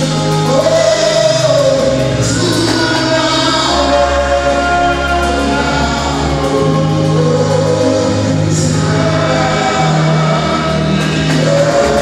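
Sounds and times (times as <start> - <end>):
gospel singing with band: 0.0 - 12.0
long steady bass notes: 0.0 - 12.0.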